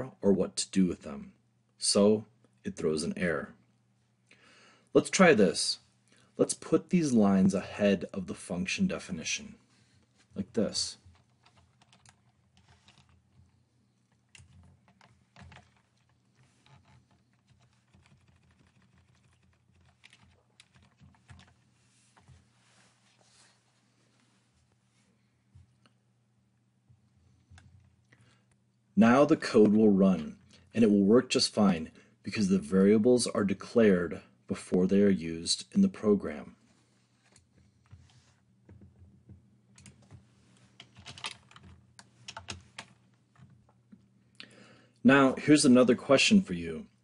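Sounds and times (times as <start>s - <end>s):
low steady hum: 0.0s - 47.0s
computer keyboard clicking: 11.1s - 13.2s, 14.3s - 21.6s, 40.8s - 42.9s.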